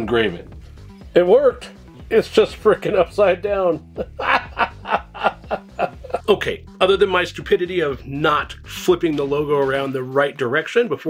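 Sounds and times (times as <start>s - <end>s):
man chuckling: 3.8s - 6.4s.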